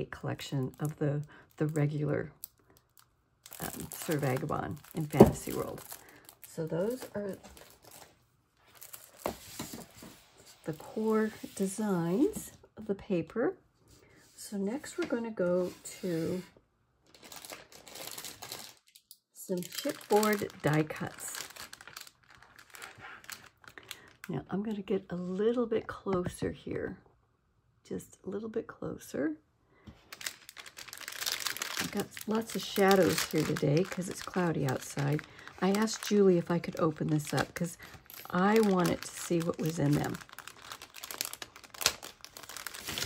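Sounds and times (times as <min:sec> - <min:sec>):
plastic packet crinkling: 0:00.6 - 0:09.7, 0:17.1 - 0:24.3, 0:30.0 - 0:43.0.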